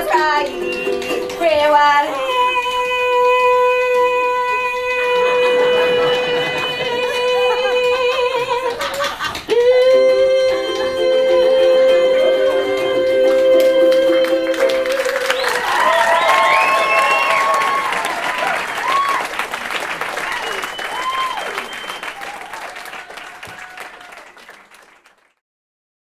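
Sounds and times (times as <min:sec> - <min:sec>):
audience clapping and cheering: 0:00.0 - 0:25.4
people whooping: 0:14.2 - 0:24.6.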